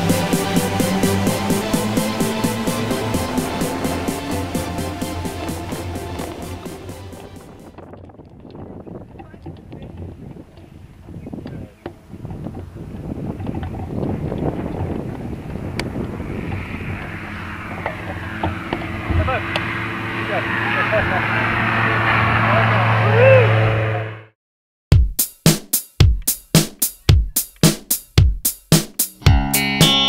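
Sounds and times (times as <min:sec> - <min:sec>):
background music: 0:00.0 - 0:07.7, 0:28.8 - 0:30.0
steady engine hum: 0:00.0 - 0:24.3
wind on microphone: 0:07.5 - 0:20.2
wheels rolling over grass: 0:07.7 - 0:19.9.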